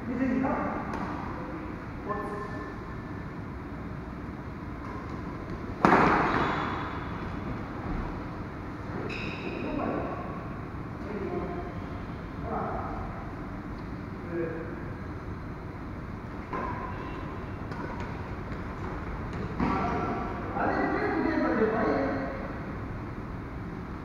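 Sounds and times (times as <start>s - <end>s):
racket hitting shuttlecock: 4.8s - 7.2s, 16.5s - 20.2s.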